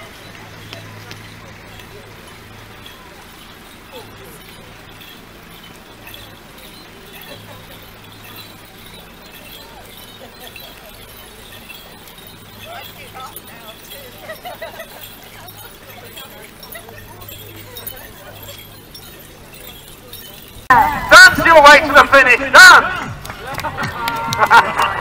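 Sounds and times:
light clinks: 0.0 - 20.7
distant voices: 0.0 - 25.0.

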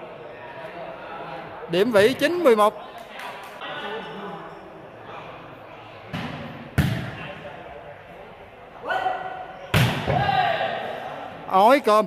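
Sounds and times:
ball struck hard: 6.1 - 7.2.

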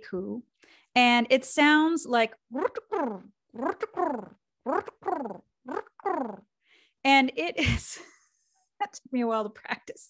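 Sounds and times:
woman imitating pigeon coos: 2.5 - 6.5.

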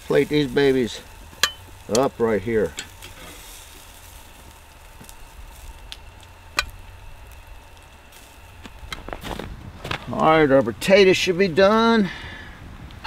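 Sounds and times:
meat sizzling on a grill: 0.0 - 12.1.

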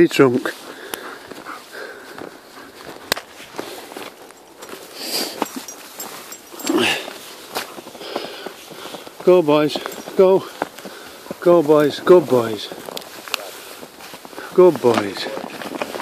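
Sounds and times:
crunching footsteps on snow: 0.0 - 16.0.

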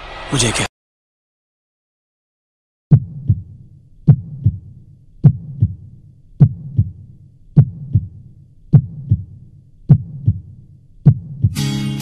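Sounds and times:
heartbeat double thump: 2.9 - 7.0, 7.6 - 11.6.

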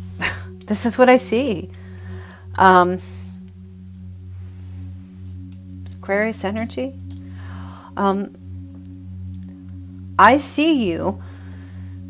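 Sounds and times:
low hum-like drone: 0.0 - 12.0.

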